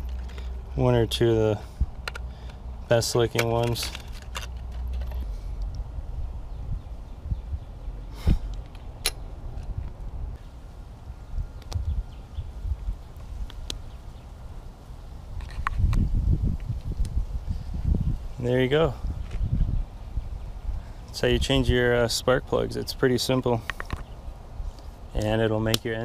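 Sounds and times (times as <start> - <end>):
microphone handling rumble: 15.4 - 20.4.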